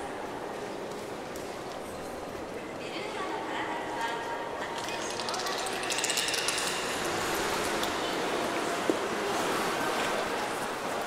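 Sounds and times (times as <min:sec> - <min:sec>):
water lapping and splashing: 0:06.9 - 0:11.0.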